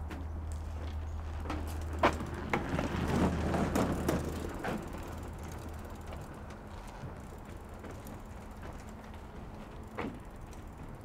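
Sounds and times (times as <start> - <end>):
tyres rumbling on boardwalk: 0.0 - 11.0
bicycle freewheel ticking: 3.7 - 11.0.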